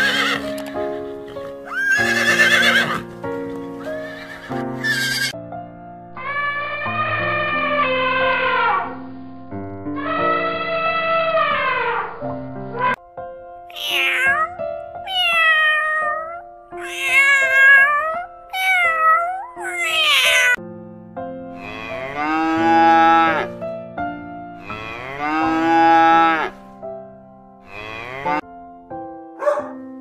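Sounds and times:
cat meowing: 13.7 - 20.6
cow mooing: 21.6 - 23.5, 24.6 - 26.5, 27.7 - 28.4.

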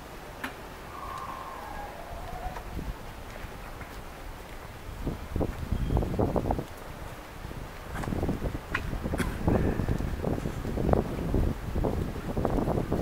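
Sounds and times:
low outdoor rumble: 0.0 - 13.0
wind buffeting microphone: 0.0 - 13.0.

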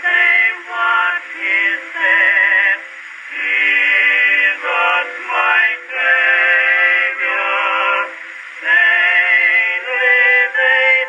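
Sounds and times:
male vocal quartet singing a hymn: 0.0 - 11.0.

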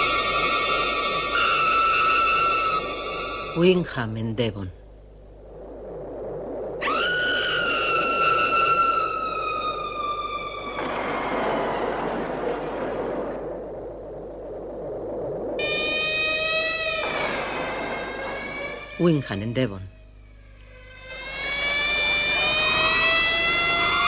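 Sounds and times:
phased drone: 14.6 - 19.1, 20.5 - 24.0
high wails sliding down: 15.6 - 19.2, 20.6 - 24.0.

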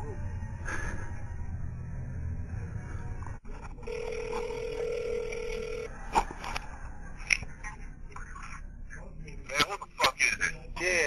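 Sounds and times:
telephone ringback tone: 3.8 - 5.9.

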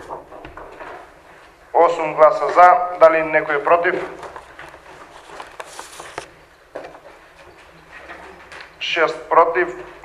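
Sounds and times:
paper rustling: 3.9 - 7.1.

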